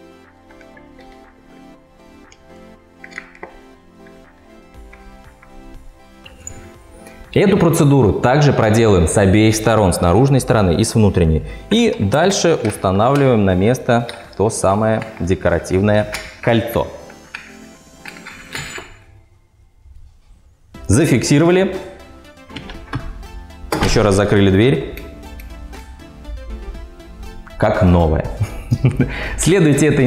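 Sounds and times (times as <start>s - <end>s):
background music: 0.0s - 30.0s
door handle metallic clicks: 22.5s - 24.1s.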